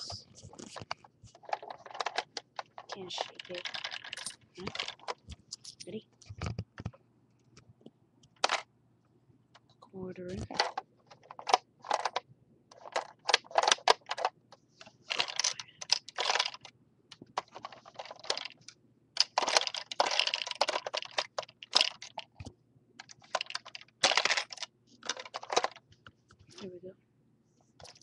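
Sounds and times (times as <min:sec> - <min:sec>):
plastic pieces clicking and clattering: 0:00.5 - 0:06.9, 0:08.3 - 0:08.7, 0:10.3 - 0:26.7, 0:27.8 - 0:28.0.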